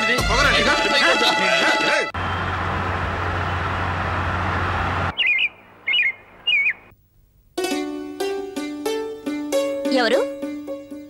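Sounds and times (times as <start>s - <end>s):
busy road traffic: 2.2s - 6.9s
short bird chirps: 5.1s - 6.9s.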